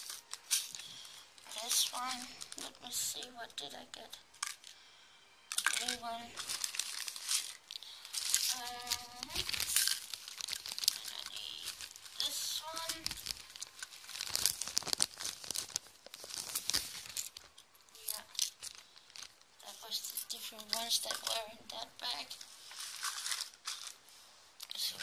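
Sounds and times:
plastic bag crinkling: 0:00.0 - 0:04.8, 0:05.5 - 0:25.0.

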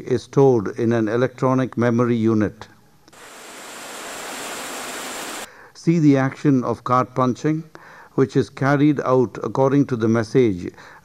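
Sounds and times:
steady hiss: 0:03.1 - 0:05.5.

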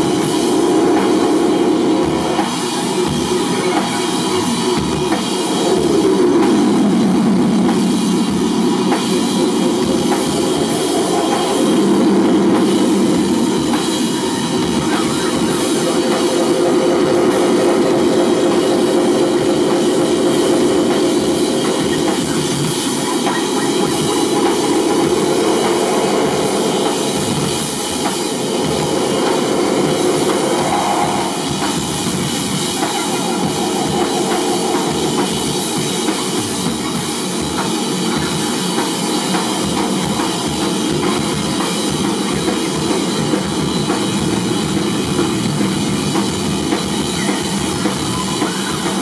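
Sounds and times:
drums and cymbals: 0:00.0 - 0:49.0
loud live rock band: 0:00.0 - 0:49.0.

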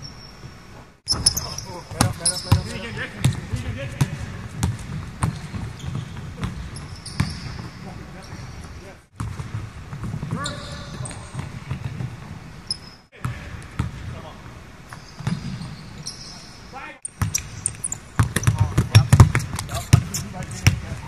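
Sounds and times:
basketballs bouncing on court: 0:01.1 - 0:14.3, 0:15.2 - 0:16.2, 0:17.0 - 0:21.0.

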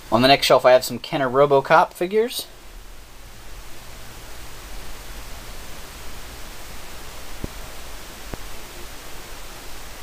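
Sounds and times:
steady hiss: 0:00.0 - 0:10.0
low hum: 0:02.4 - 0:10.0.

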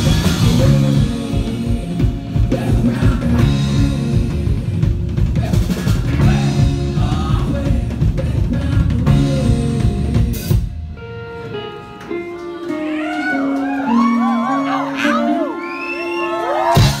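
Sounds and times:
rock band playing: 0:00.0 - 0:17.0.

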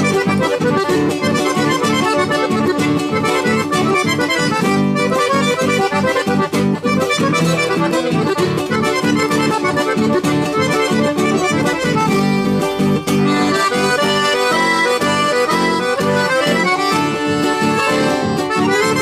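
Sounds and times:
piano accordions playing: 0:00.0 - 0:19.0
strummed acoustic guitar: 0:00.0 - 0:19.0.

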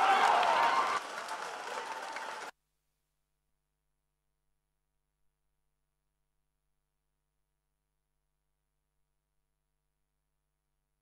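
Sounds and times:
crowd applause in a stadium: 0:00.0 - 0:02.5.

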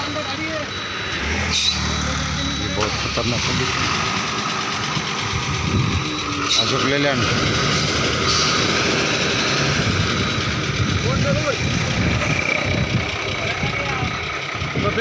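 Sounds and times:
truck diesel engine idling: 0:00.0 - 0:15.0.

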